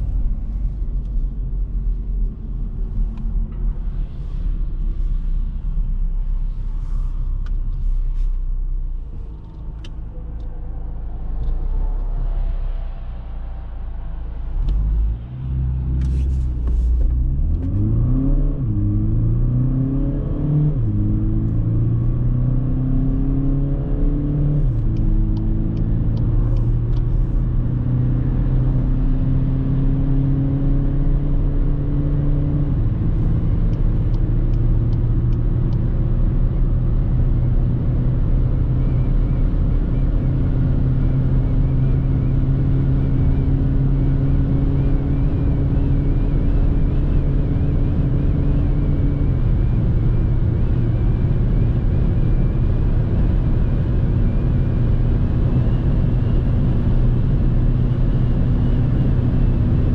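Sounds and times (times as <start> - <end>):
diesel engine accelerating: 0.0 - 59.9
road and wind noise: 0.0 - 59.9.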